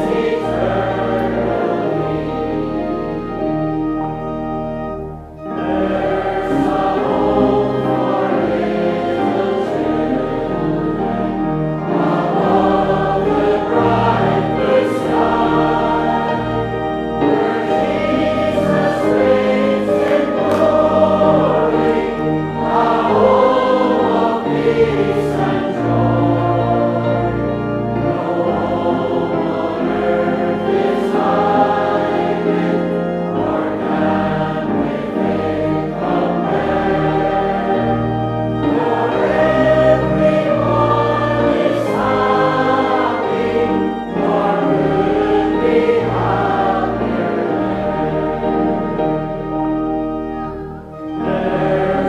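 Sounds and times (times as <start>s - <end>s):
congregation singing a hymn: 0.0s - 52.0s.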